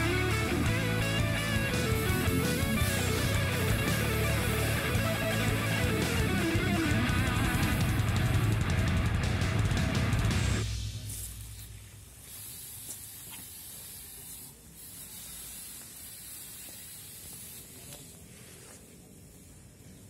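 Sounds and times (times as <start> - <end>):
electric guitar rock music: 0.0 - 10.7
insecticide spray hissing: 11.1 - 18.8.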